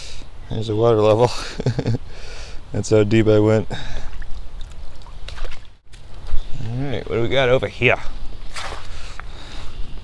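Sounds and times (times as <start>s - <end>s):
footsteps on leaves and twigs: 8.4s - 9.9s.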